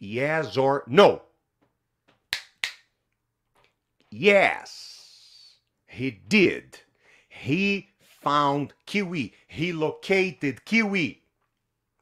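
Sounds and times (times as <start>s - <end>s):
finger snaps: 2.3s - 2.9s.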